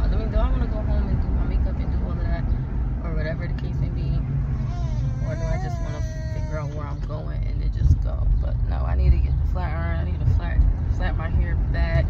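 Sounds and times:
car road and engine rumble: 0.0 - 12.0
faint voices: 4.5 - 7.5.

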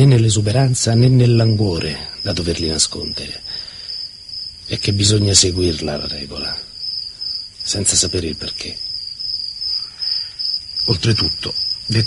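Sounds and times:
crickets chirring: 0.0 - 12.0.

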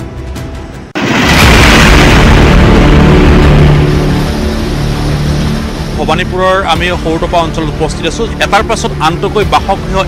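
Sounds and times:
floodwater rushing: 0.9 - 10.0.

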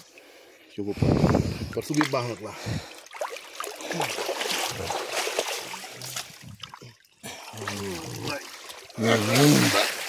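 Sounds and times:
river water splashing: 1.7 - 10.0.

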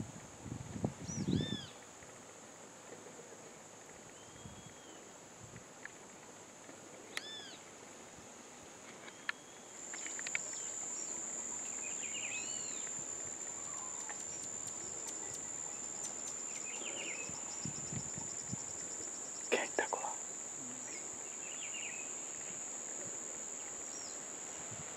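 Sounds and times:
high-pitched insect drone: 9.8 - 24.2.

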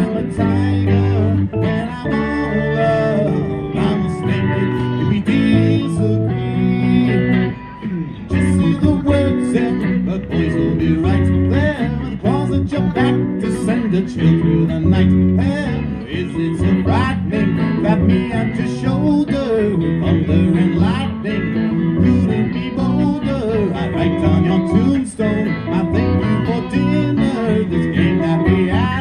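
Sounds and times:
lead guitar bending notes: 0.0 - 29.0
live rock band instrumental: 0.0 - 29.0.

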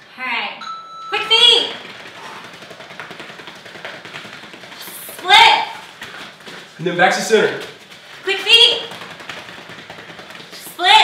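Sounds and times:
rapid footsteps on rubber floor: 1.2 - 11.0.

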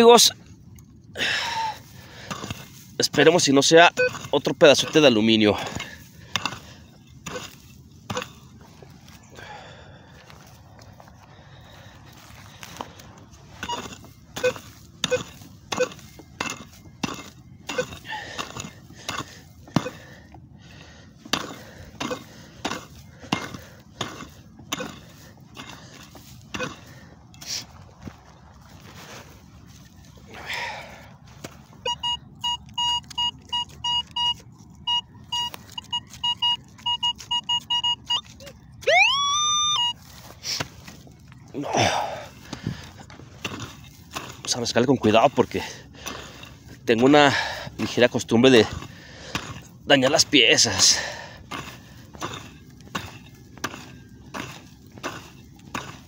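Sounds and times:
pick-mattock striking soil: 2.1 - 9.0, 12.4 - 20.2, 40.0 - 56.0
metal detector pulsed beeps: 3.6 - 5.1, 13.6 - 17.9, 31.8 - 40.0
rising electronic tone: 38.8 - 39.9.

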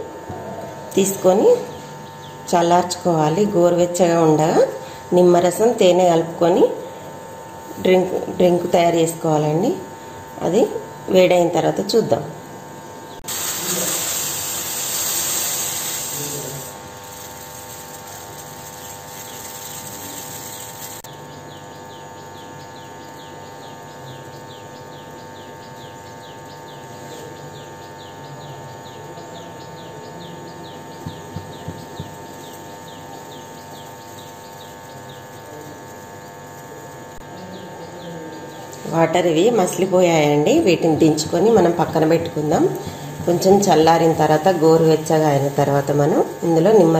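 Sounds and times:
loud hiss: 13.2 - 21.1
soup boiling in a pot: 13.2 - 21.1.

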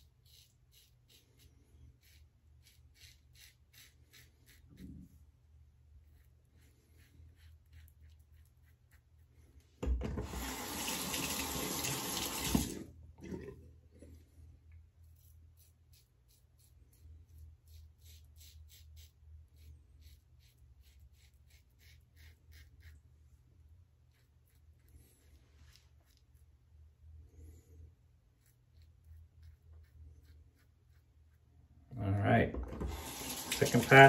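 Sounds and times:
razor scraping stubble: 0.0 - 5.2, 15.0 - 23.1
bathroom tap running: 9.8 - 13.6, 32.6 - 34.0.

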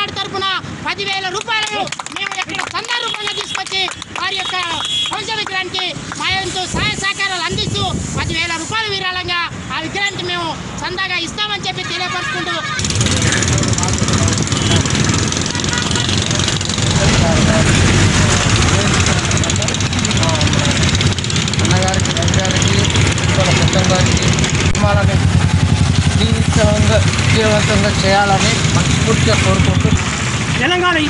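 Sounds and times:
man speaking: 0.0 - 15.0, 16.8 - 25.4, 26.1 - 31.0
road traffic noise: 0.0 - 31.0.

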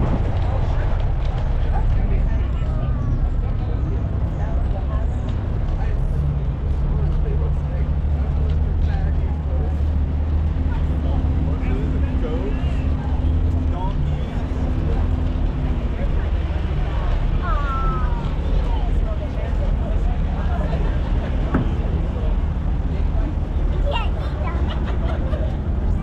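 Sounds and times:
engine idling hum: 0.0 - 26.0
people talking: 0.0 - 26.0.

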